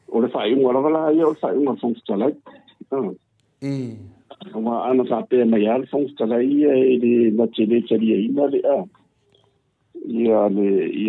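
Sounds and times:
person's sustained voiced sound: 0:03.6 - 0:04.2.

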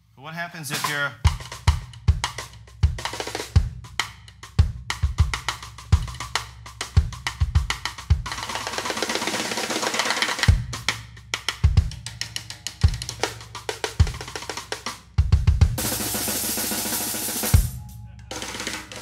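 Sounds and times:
bass drum kicks: 0:01.3 - 0:06.4, 0:15.2 - 0:16.0
sustained cymbal wash: 0:15.8 - 0:19.0.

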